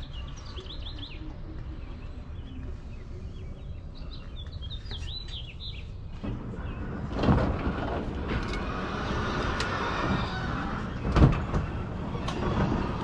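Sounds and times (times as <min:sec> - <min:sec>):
small birds chirping: 0:00.0 - 0:07.3.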